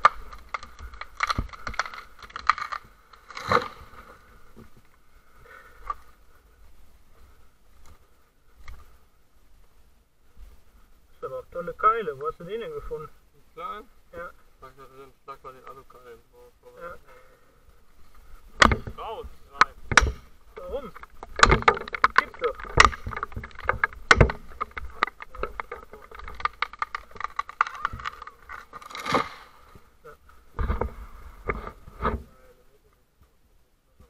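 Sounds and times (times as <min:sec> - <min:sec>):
rustling through dry brush: 0:00.0 - 0:11.4, 0:16.8 - 0:32.6
sharp knocks and clatter: 0:18.6 - 0:29.4.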